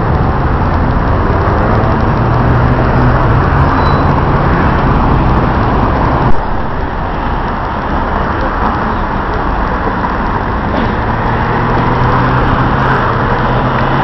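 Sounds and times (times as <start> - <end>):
bus engine running: 0.0 - 14.0
road noise rumble: 0.0 - 14.0.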